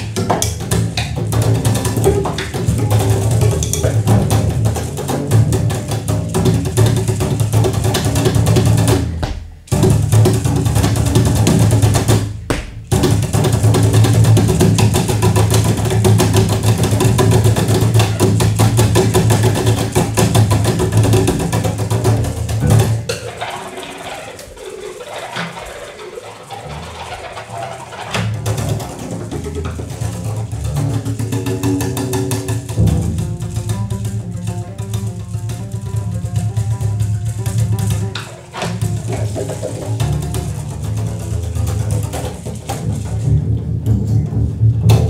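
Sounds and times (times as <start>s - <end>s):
double bass played percussively: 0.0s - 45.0s.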